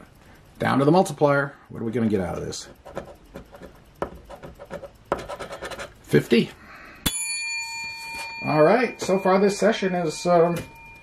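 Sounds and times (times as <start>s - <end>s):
coin scratching lottery ticket: 2.5s - 6.0s.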